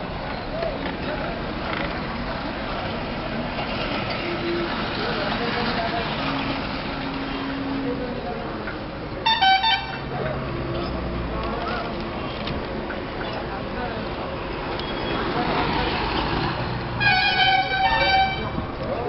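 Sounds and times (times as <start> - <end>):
street traffic noise: 0.0 - 19.0
vehicle horn toots: 9.2 - 10.0, 17.0 - 18.6.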